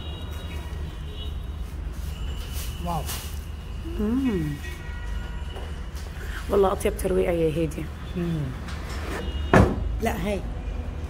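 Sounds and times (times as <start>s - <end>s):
busy shop hum: 0.0s - 11.0s.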